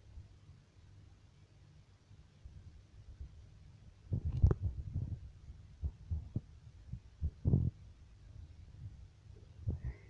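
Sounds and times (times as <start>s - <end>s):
dull low thumps: 4.1s - 7.8s.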